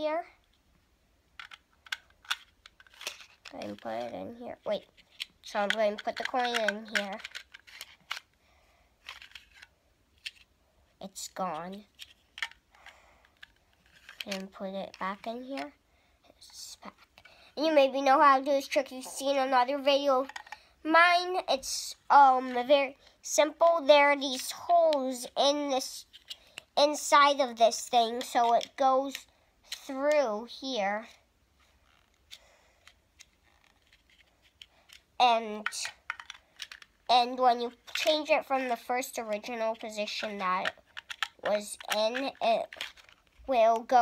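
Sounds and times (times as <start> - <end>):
soft handling noise: 0.4 - 8.4, 9.0 - 17.4, 26.0 - 26.8, 31.5 - 44.0
plastic box clicks: 5.2 - 8.3, 35.6 - 37.0, 40.2 - 43.2.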